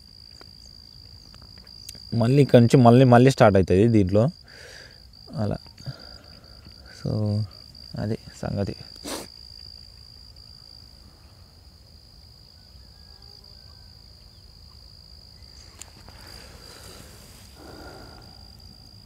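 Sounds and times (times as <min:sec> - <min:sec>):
high-pitched insect drone: 0:12.3 - 0:19.0.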